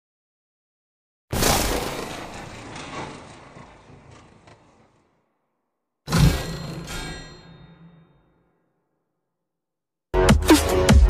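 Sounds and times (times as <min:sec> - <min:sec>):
loud impact sound effect: 0:01.3 - 0:05.2, 0:06.1 - 0:08.5.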